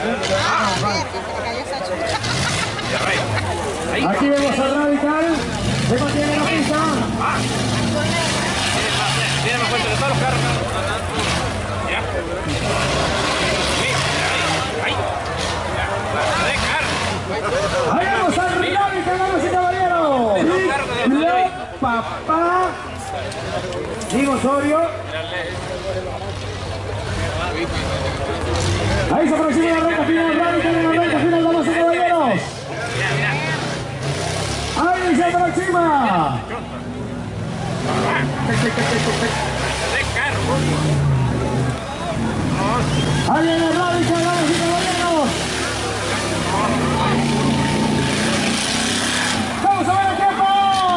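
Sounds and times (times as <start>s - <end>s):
buggy engine under load: 0.0s - 50.9s
spectators' voices: 0.0s - 50.9s.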